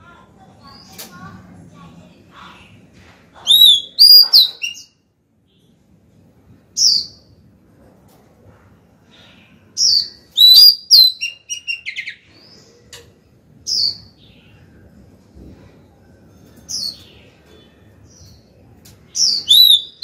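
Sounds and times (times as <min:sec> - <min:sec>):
bird whistled song: 0:03.5 - 0:05.0, 0:09.8 - 0:12.2, 0:19.2 - 0:20.0.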